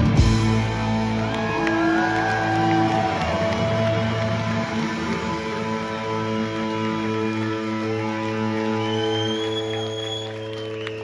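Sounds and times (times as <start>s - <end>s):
rock band sustained chord: 0.0s - 8.4s.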